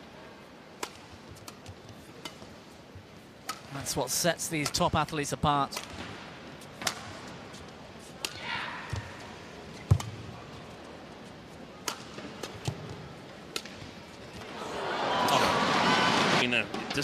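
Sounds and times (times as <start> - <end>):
racket striking shuttlecock: 0.8 - 2.4, 6.8 - 7.2.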